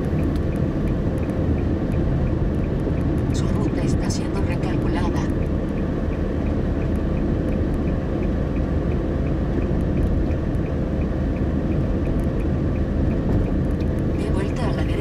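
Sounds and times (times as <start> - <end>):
road and engine rumble inside car: 0.0 - 15.0
faint regular high ticks: 4.8 - 14.1.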